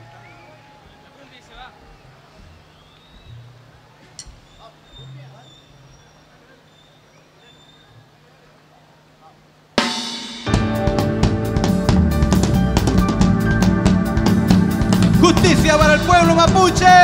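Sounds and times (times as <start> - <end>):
faint crowd voices: 0.0 - 9.8
low hum from speakers: 0.0 - 9.8
band drum and cymbal hit: 9.8 - 17.0.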